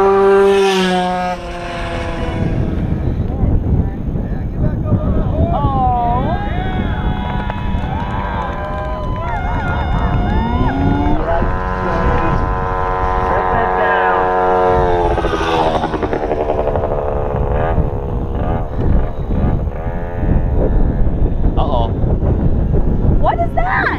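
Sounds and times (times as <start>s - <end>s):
moped engine at high revs: 0.0s - 4.0s, 9.4s - 23.2s
low rumbling noise: 0.0s - 23.9s
voices: 1.9s - 17.0s, 23.2s - 23.9s.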